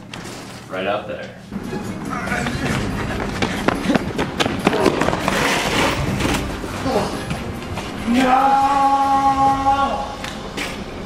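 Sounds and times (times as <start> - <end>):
shoes scuffling: 2.4 - 8.2.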